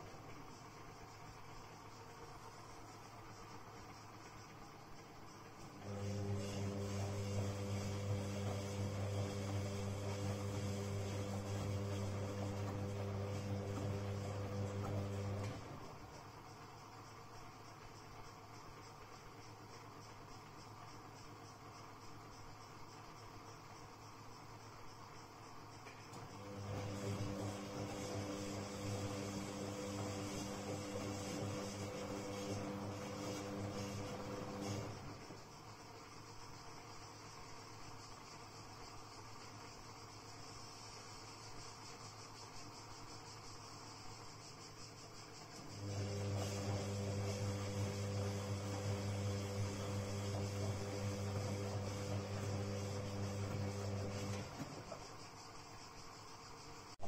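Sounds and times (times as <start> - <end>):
washing machine drum motor humming: 0.0 - 21.4, 25.3 - 37.2, 43.7 - 56.1.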